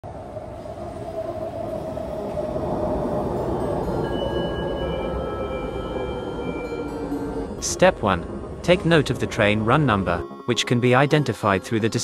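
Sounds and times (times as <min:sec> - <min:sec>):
metro train rumble: 0:00.0 - 0:12.0.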